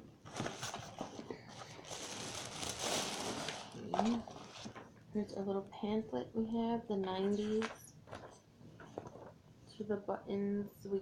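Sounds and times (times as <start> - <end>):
tissue paper rustling: 0.2 - 4.9.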